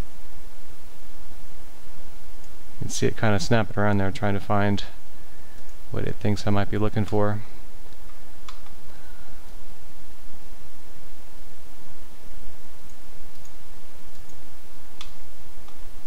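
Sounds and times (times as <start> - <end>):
steady background hiss: 0.0 - 16.0
computer mouse clicks: 5.6 - 5.8, 7.9 - 8.8, 12.8 - 14.4, 15.0 - 15.8.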